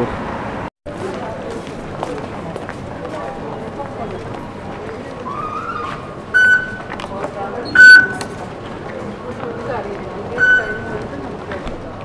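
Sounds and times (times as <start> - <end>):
busy station background noise: 0.0 - 12.0
card reader beeps: 6.4 - 6.9, 7.7 - 8.3, 10.4 - 11.0.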